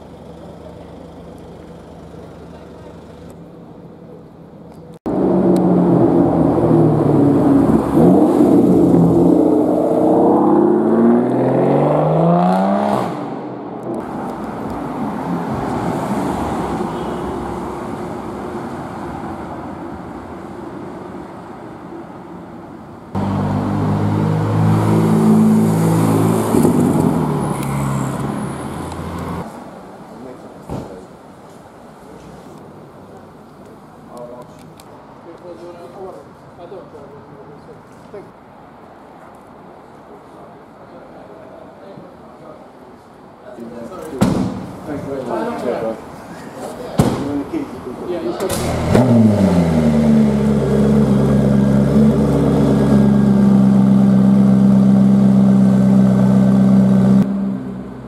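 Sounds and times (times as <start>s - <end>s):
car engine accelerating hard: 5.1s - 13.3s, 23.2s - 29.5s, 48.5s - 58.0s.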